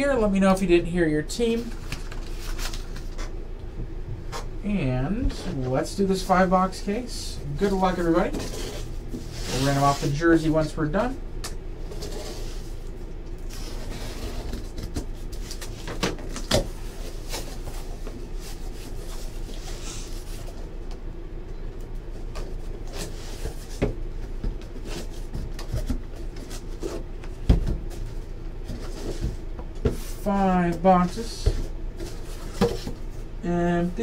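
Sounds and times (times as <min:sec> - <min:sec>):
steady low hum: 0:00.0 - 0:34.0
cardboard scraping and rustling: 0:07.7 - 0:10.2, 0:11.8 - 0:20.7, 0:22.2 - 0:30.2.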